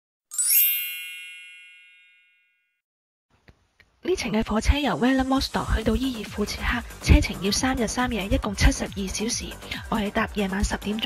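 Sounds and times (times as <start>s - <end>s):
bright metallic chime: 0.3s - 2.7s.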